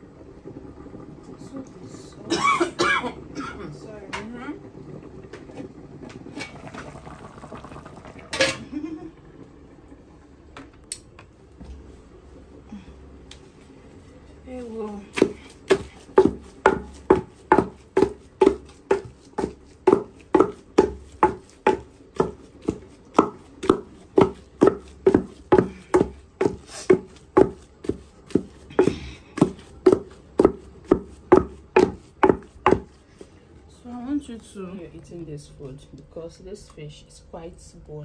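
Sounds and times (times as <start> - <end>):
water boiling in a pot: 0.0 - 34.9
wooden pestle thudding in mortar: 15.1 - 33.0.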